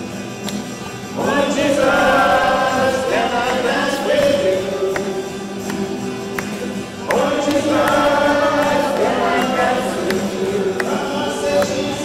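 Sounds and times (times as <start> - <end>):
musical accompaniment: 0.0 - 12.0
congregation singing a hymn: 1.1 - 12.0.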